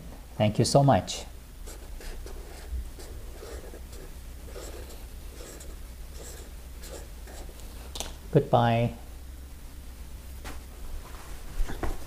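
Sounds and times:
marker scratching on paper: 1.6s - 7.8s.

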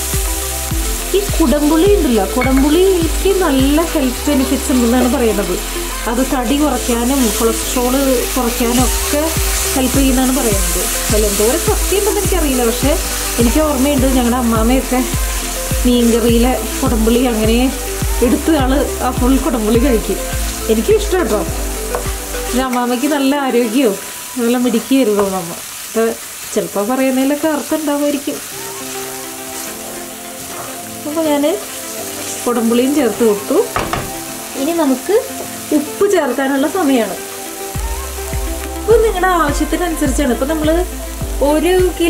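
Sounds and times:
background music with beat: 0.0s - 22.9s, 28.6s - 34.6s, 37.2s - 42.0s
sauce sizzling in a pan: 0.0s - 42.0s
wooden spatula scraping pan: 29.6s - 30.9s.

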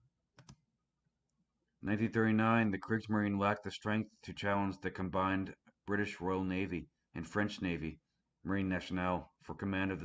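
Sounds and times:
computer mouse clicks: 0.3s - 0.7s
man speaking: 1.8s - 10.0s.

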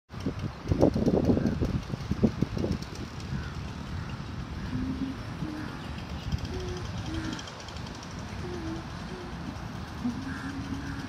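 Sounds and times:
wind buffeting microphone: 0.1s - 11.0s.

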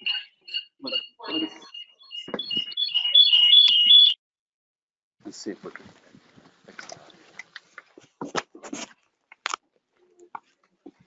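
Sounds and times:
clicks and knocks near microphone: 2.3s - 2.8s, 5.6s - 9.6s.

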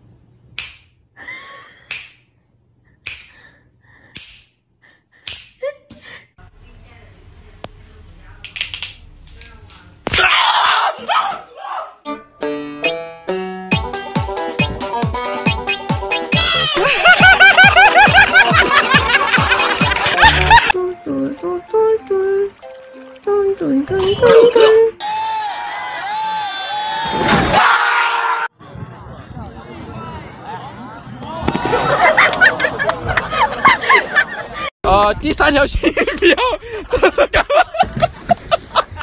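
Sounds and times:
finger snap: 0.5s - 1.0s, 1.8s - 2.3s, 3.0s - 3.5s, 4.1s - 4.6s, 5.2s - 5.6s
background music with kick drum: 12.1s - 16.6s
high-pitched laughing: 16.4s - 20.8s, 23.9s - 25.0s.

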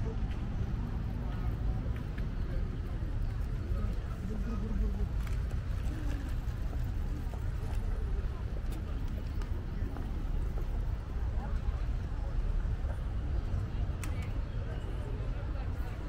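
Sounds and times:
faint voices of passers-by: 0.0s - 16.0s
steady low city rumble: 0.0s - 16.0s.

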